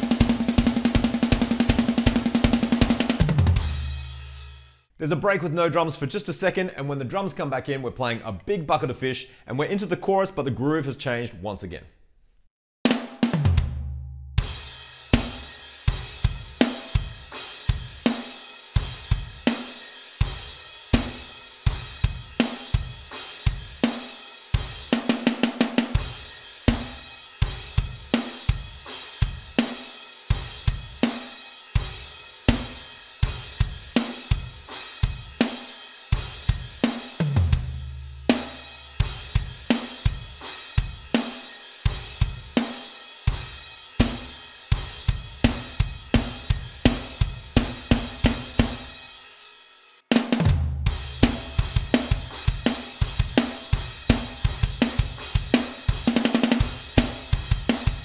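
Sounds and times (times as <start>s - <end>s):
electronic drum kit groove: 0.0s - 4.7s, 12.9s - 49.3s, 50.1s - 58.0s.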